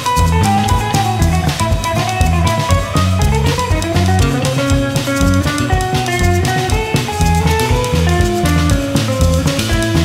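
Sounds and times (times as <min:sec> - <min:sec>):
bass guitar: 0:00.0 - 0:10.0
drum kit beat: 0:00.0 - 0:10.0
electric guitar melody: 0:00.0 - 0:10.0.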